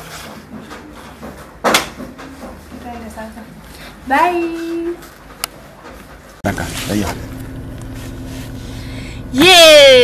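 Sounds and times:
faint steady hum: 6.5s - 10.0s.

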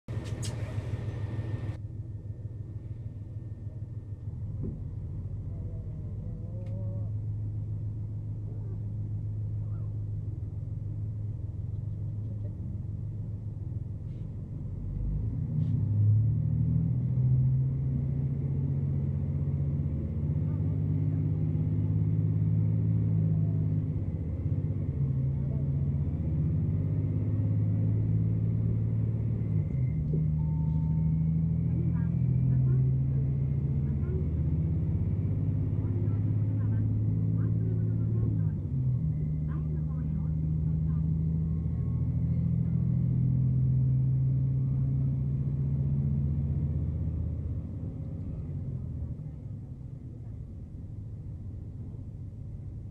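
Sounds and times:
diesel railcar engine drone: 0.0s - 52.9s.

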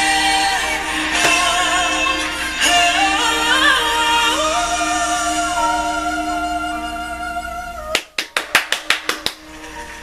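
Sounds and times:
quiet music: 0.0s - 10.0s
person clapping hands quickly: 8.0s - 9.4s.

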